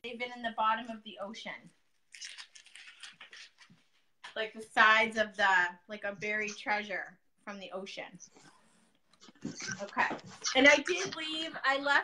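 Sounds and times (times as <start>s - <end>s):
tape being peeled off: 2.1s - 3.8s.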